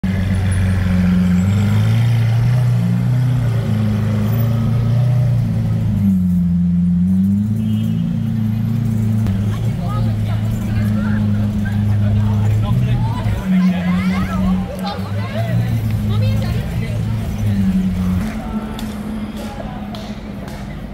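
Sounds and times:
faint street voices: 0.0 - 20.9.

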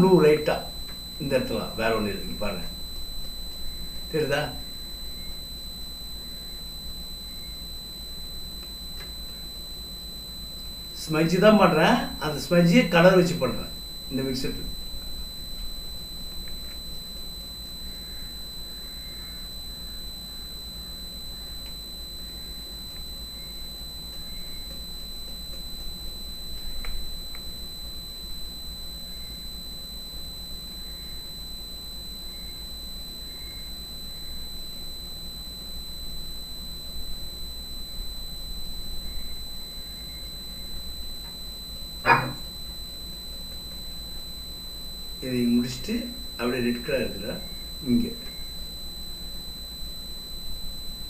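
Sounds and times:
electrical hum: 0.0 - 51.0
high-pitched whine: 0.0 - 51.0
faint click: 8.6 - 9.4, 26.8 - 27.5.

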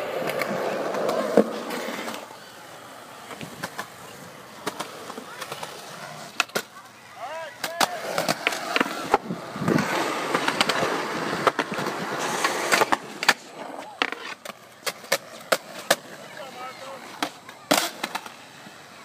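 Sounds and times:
skateboards clacking on concrete: 0.0 - 19.0
skateboards rolling on concrete: 0.0 - 19.0.

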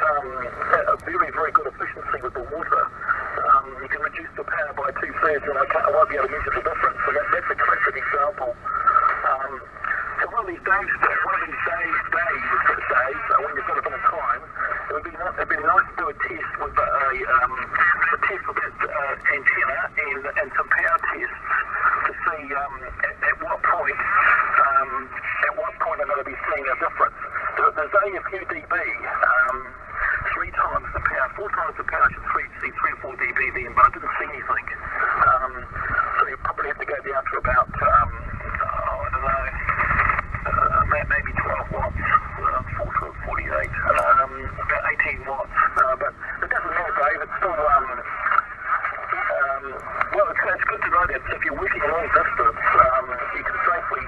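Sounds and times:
thin radio speech through speaker: 0.0 - 54.0.

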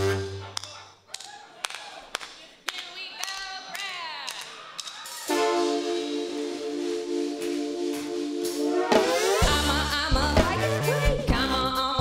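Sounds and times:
downward sliding pitched sound: 5.3 - 9.5.

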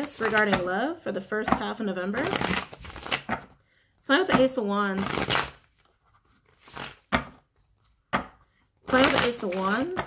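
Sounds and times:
cards snapping: 2.3 - 3.5.

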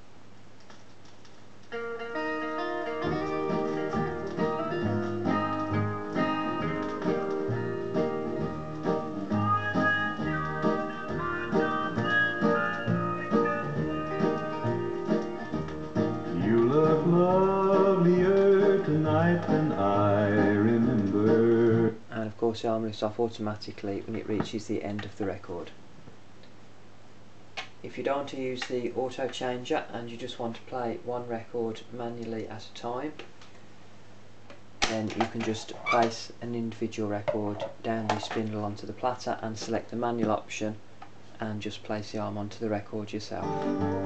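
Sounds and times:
low steady hum: 0.0 - 44.0
guitar music with pulsing bass: 1.7 - 21.5, 43.4 - 44.0.

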